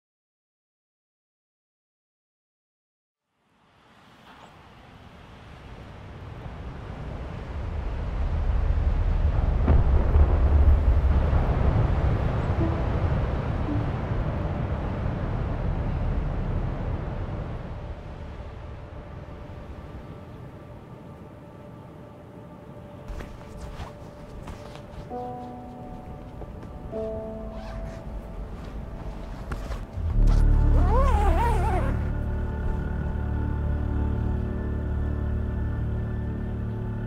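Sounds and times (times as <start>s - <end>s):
wind and breaking surf rumble: 4.0s - 21.5s, 23.0s - 32.2s
sustained musical tones: 12.5s - 17.9s.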